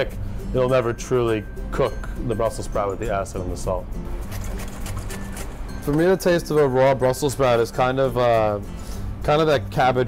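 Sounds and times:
background music with low held notes: 0:00.0 - 0:10.0
vegetables shaved on a mandoline: 0:04.1 - 0:05.7.

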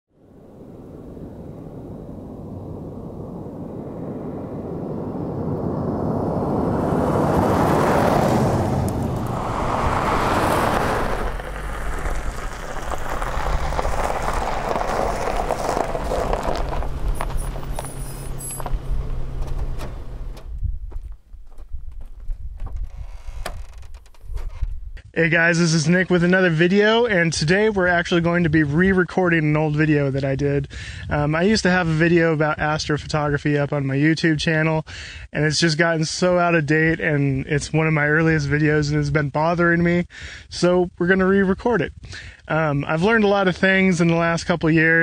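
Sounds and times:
car driving on dirt road: 0:00.2 - 0:24.9
car engine idling: 0:06.4 - 0:20.5.

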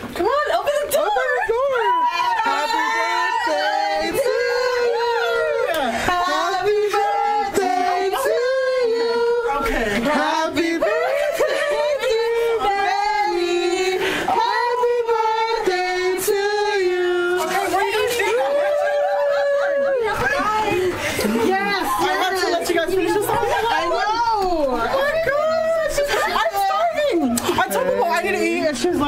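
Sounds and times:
person singing melody: 0:02.5 - 0:20.1.

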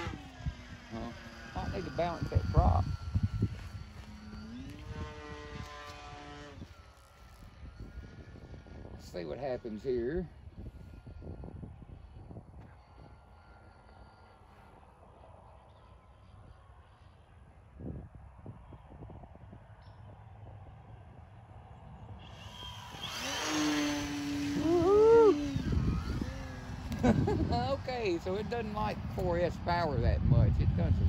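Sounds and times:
model plane motor whine: 0:00.0 - 0:31.0.

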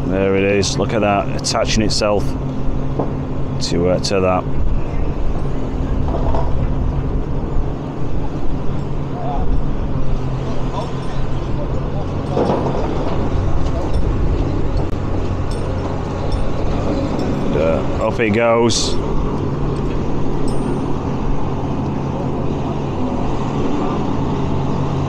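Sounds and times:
excavator diesel engine running: 0:00.0 - 0:25.0
street noise: 0:00.0 - 0:25.0.

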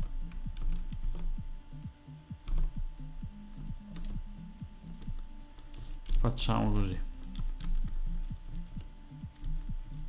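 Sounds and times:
keyboard keys clicking: 0:00.0 - 0:01.4, 0:02.4 - 0:02.9, 0:03.6 - 0:06.4, 0:07.2 - 0:10.0
quiet background music: 0:00.0 - 0:10.0.

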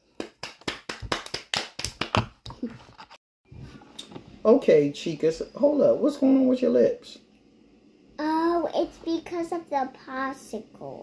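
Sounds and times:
hands clapping: 0:00.1 - 0:02.6.

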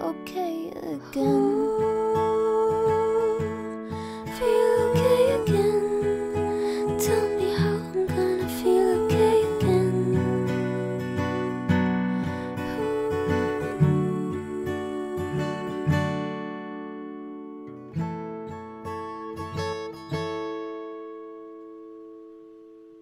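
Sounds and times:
acoustic guitar playing: 0:00.0 - 0:23.0.

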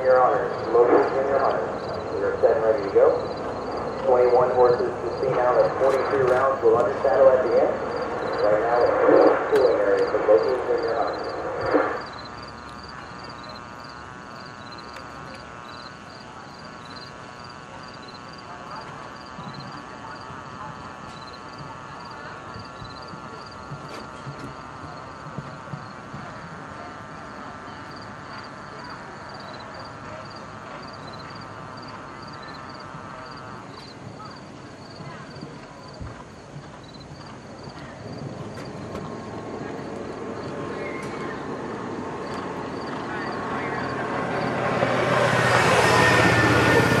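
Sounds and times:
man on public-address system: 0:00.0 - 0:12.2.

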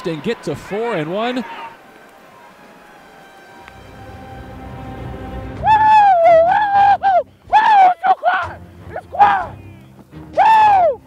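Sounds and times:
background music: 0:00.0 - 0:11.0
man yelling woo: 0:05.6 - 0:09.6, 0:10.4 - 0:11.0.

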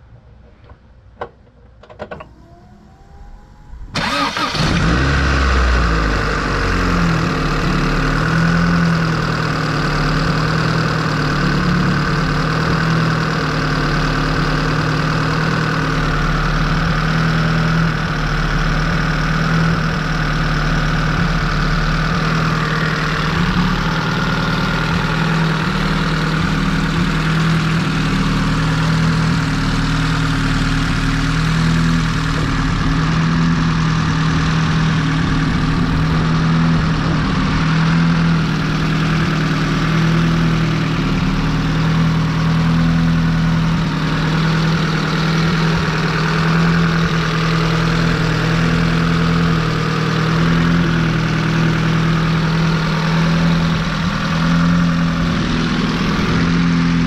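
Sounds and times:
car engine starting and idling: 0:00.0 - 0:57.0.

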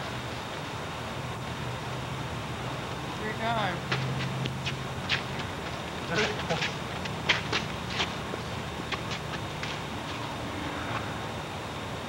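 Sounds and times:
recording hiss and low hum: 0:00.0 - 0:12.0
distant voices of players: 0:03.0 - 0:11.3.

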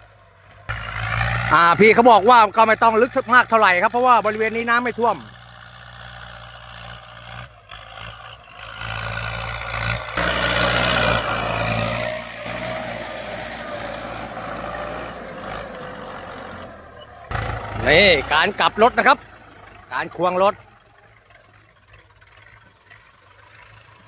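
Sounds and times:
tractor engine under load: 0:00.0 - 0:24.0.

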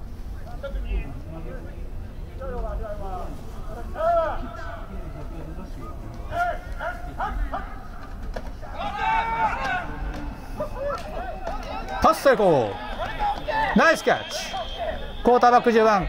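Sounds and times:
men shouting: 0:08.7 - 0:16.0.

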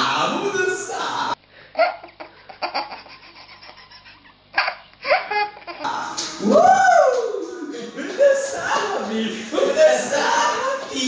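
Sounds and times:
baby giggling: 0:01.8 - 0:05.9.

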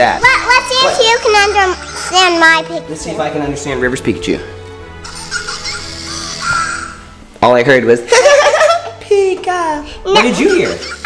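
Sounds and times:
soft background music: 0:00.0 - 0:11.0
squeaky high-pitched toy voice: 0:00.2 - 0:02.6, 0:05.0 - 0:07.0.

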